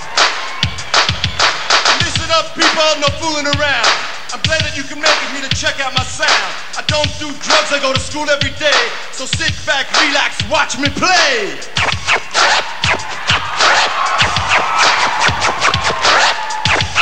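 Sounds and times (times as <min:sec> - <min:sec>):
hip hop drum beat: 0:00.0 - 0:17.0
turntable scratching: 0:00.1 - 0:17.0.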